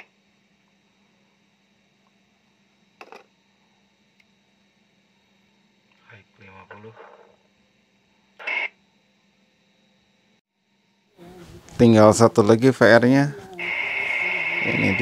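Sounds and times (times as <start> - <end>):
faint steady hum: 0.0 - 15.0
faint murmured voice: 11.2 - 12.0, 13.1 - 15.0.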